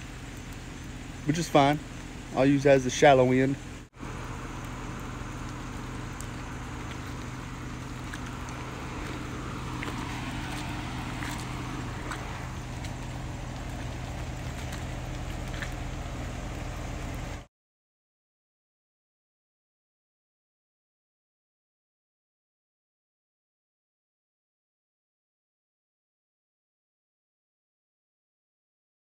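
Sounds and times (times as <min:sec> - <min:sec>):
low engine hum: 0:00.0 - 0:17.5
faint ticks: 0:04.0 - 0:17.4.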